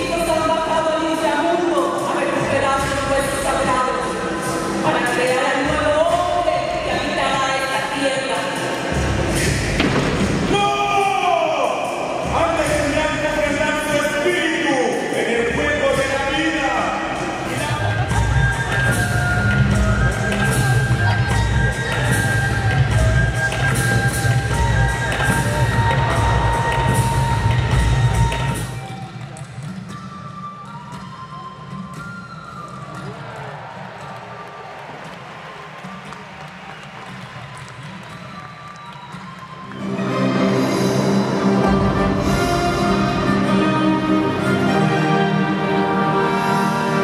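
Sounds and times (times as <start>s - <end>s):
stage music over sound system: 0.0s - 47.0s.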